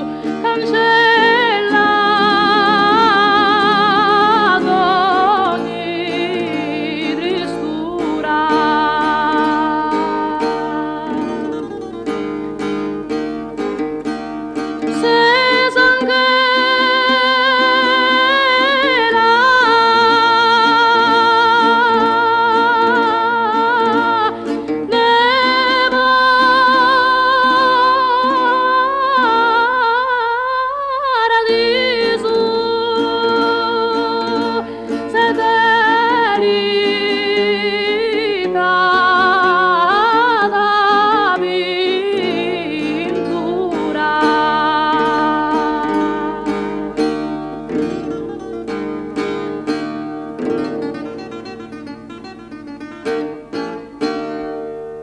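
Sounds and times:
woman singing with vibrato: 0.0s - 12.5s, 14.8s - 52.2s
guitar chords: 0.0s - 55.0s.

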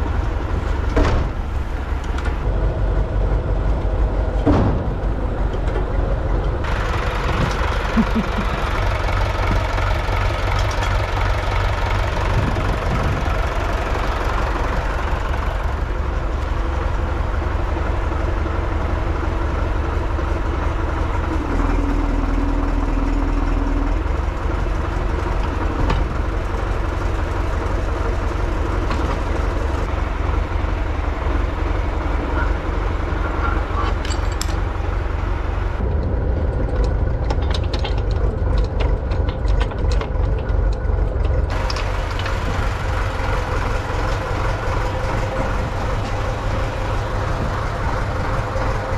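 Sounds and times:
rattles and clanks: 0.0s - 48.9s
tractor diesel engine running: 0.0s - 48.9s.

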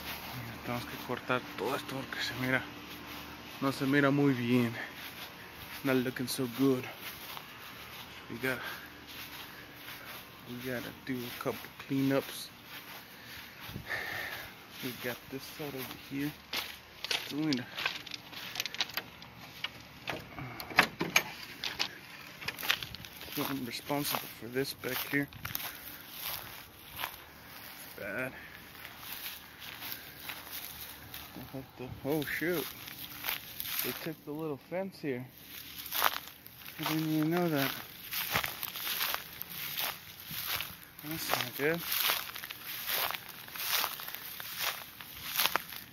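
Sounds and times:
footsteps crunching dry grass: 0.0s - 20.6s, 21.2s - 45.9s
phone handling clicks and rustles: 17.0s - 23.1s.

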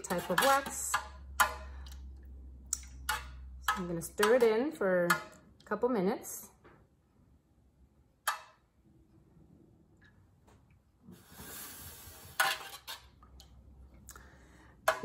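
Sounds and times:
utensil scraping metal pitcher: 0.0s - 1.7s, 11.9s - 13.2s.

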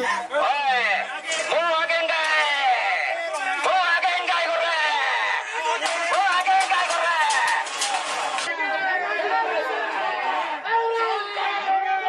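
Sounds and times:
men shouting angrily: 0.0s - 12.0s.

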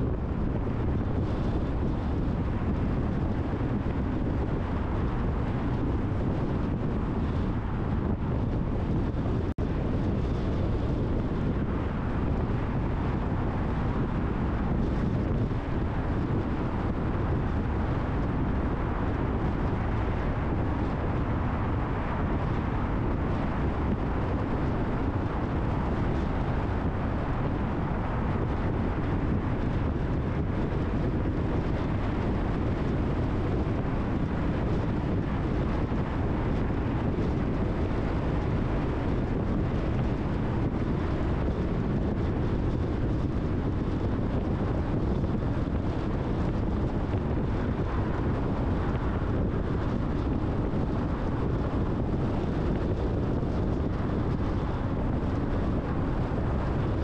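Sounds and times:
rush of wind: 0.0s - 57.0s.

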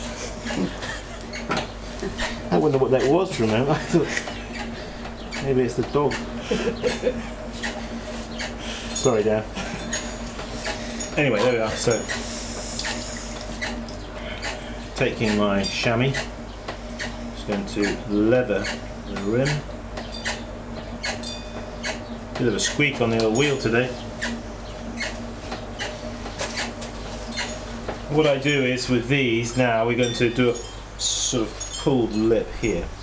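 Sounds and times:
potter's wheel motor hum: 0.0s - 33.0s.

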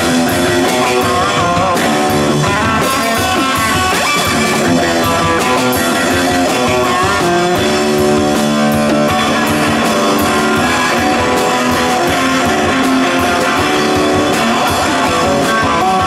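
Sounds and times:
cymbals: 0.0s - 16.0s
electric guitar bent notes: 0.0s - 16.0s
live rock band: 0.0s - 16.0s.

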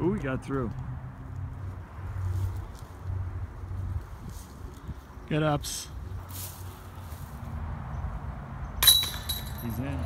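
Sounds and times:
wind rumble on microphone: 2.1s - 5.2s
disc hitting metal basket: 8.8s - 9.8s.

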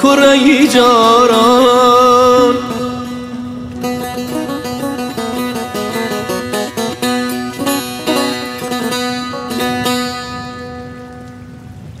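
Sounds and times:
light rain patter: 0.0s - 12.0s
plucked string note ringing: 2.3s - 11.8s.

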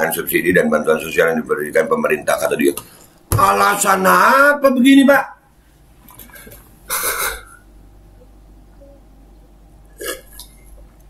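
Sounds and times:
low room hum: 0.0s - 11.0s
man gulping a drink: 9.9s - 11.0s.

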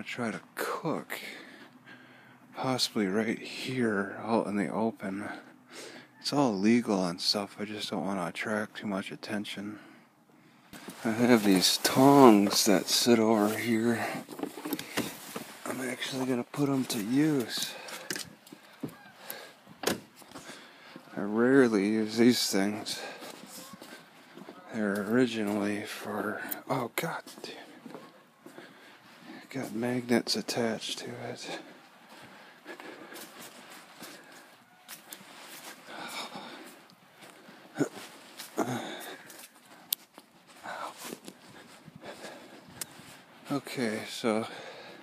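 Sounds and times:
phone handling rustle: 10.8s - 16.1s
footsteps on grass: 10.8s - 19.4s, 20.0s - 43.6s
handling clicks and knocks: 14.3s - 15.7s.

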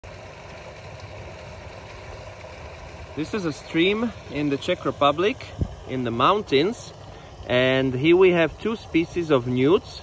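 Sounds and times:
stream running over stones: 0.0s - 10.0s
water spilling from drain pipe: 0.0s - 10.0s.

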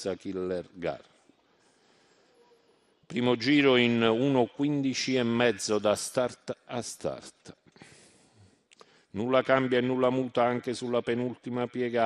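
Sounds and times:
faint background hiss: 0.0s - 12.0s.

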